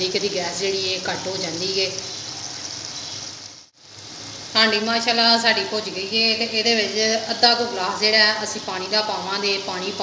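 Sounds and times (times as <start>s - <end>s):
meat sizzling in a metal pan: 0.0s - 10.0s.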